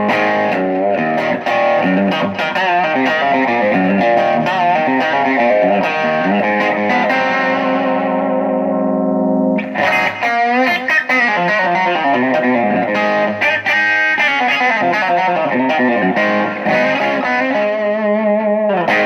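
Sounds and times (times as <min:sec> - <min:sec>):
overdriven electric guitar chords: 0:00.0 - 0:19.0.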